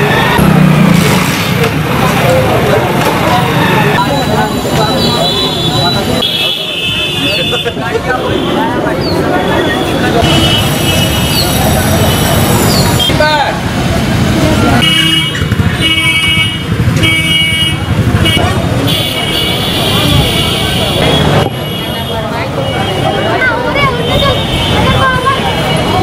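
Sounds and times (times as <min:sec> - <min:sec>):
crowd voices: 0:00.0 - 0:26.0
street traffic: 0:00.0 - 0:26.0
vehicle horn honking: 0:05.0 - 0:08.7, 0:09.7 - 0:11.4, 0:14.8 - 0:25.2.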